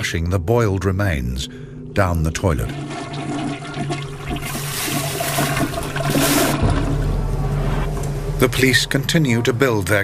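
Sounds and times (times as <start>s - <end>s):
low steady hum: 0.0s - 10.0s
toilet flushing: 2.4s - 7.2s.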